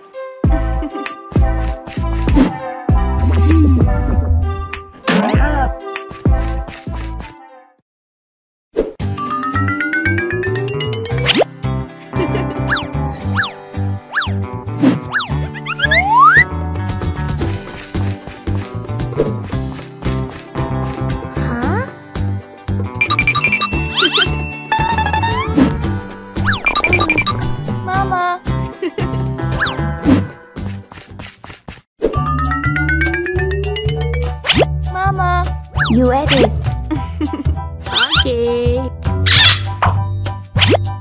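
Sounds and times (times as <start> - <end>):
bouncy children's music: 0.0 - 7.5, 9.0 - 14.4, 15.2 - 41.0
cartoon rising glide: 15.1 - 16.4
cartoon pitch sweeps: 15.1 - 16.5, 23.0 - 25.7
wavering tone: 23.0 - 25.7, 32.2 - 34.4.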